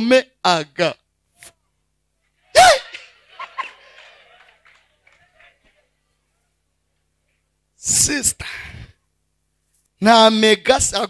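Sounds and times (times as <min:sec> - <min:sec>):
man exclaiming into microphone: 0:02.6 - 0:03.0.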